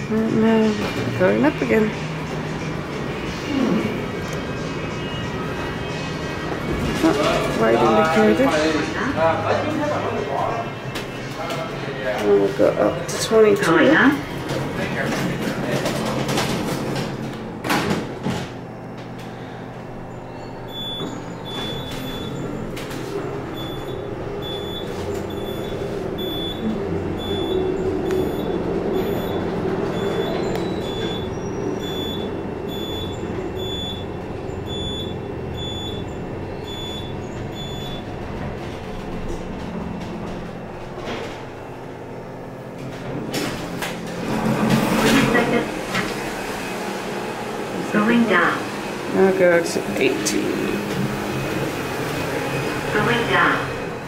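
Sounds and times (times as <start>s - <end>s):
elevator doors sliding: 0.0s - 54.0s
elevator hum: 0.0s - 54.0s
short high beeps: 23.6s - 29.4s.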